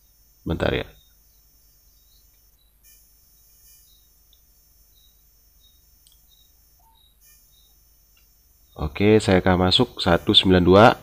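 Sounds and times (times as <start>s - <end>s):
faint high-pitched chirps: 0.0s - 9.0s
steady low hum: 0.0s - 11.0s.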